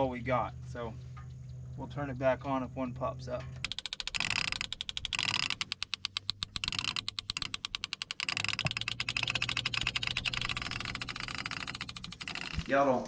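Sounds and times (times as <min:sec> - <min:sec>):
low steady hum: 0:00.0 - 0:13.0
fishing reel clicker ratcheting: 0:03.6 - 0:12.7.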